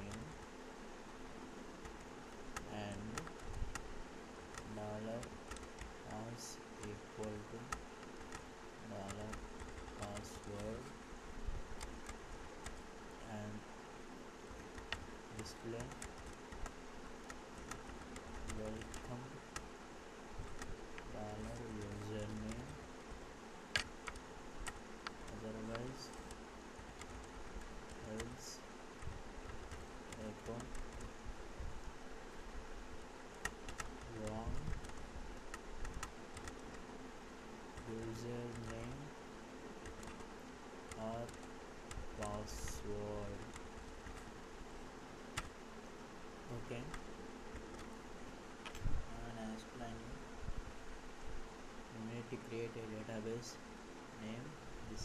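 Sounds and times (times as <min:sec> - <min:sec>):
faint low buzzing hum: 0:00.0 - 0:55.0
steady background noise: 0:00.0 - 0:55.0
computer keyboard keystrokes: 0:01.8 - 0:03.8, 0:04.5 - 0:06.2, 0:09.0 - 0:10.9, 0:14.5 - 0:16.7, 0:17.3 - 0:19.7, 0:20.5 - 0:22.8, 0:23.7 - 0:28.4, 0:29.0 - 0:31.1, 0:33.3 - 0:36.8, 0:37.8 - 0:39.0, 0:39.8 - 0:40.3, 0:48.6 - 0:48.9.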